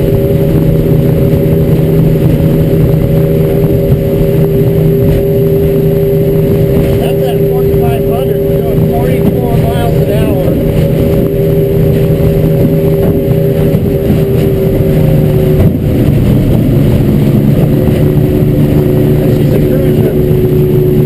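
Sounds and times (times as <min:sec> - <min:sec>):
hull rushing through water: 0:00.0 - 0:21.0
outboard motor running: 0:00.0 - 0:21.0.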